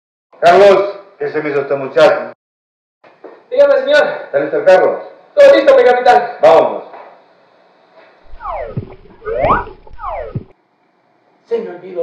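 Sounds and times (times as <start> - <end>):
comic sliding-pitch sound effect: 8.3 - 10.5
low hum: 8.3 - 10.5.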